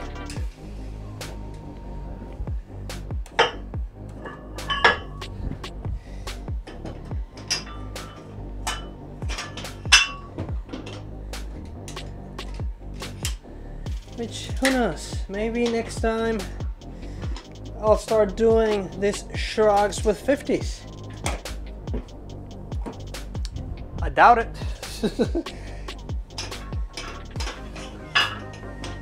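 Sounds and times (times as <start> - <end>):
background music: 0.0 - 29.0
metal weight plates clinking: 3.4 - 5.2, 6.7 - 11.1, 26.3 - 29.0.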